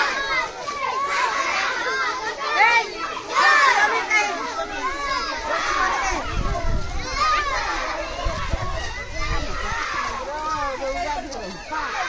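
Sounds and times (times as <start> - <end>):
crowd of children shouting: 0.0 - 12.0.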